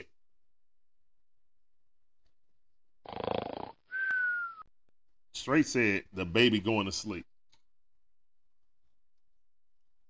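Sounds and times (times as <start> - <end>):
cartoon snore: 3.0 - 3.9
high whistle sliding down: 3.9 - 4.7.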